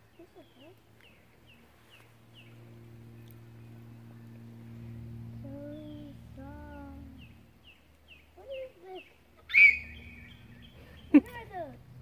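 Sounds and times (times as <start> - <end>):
lower arched bird calls: 0.0 - 11.2
birds chirping: 0.0 - 11.7
steady low hum: 0.0 - 12.0
person laughing: 11.0 - 11.4.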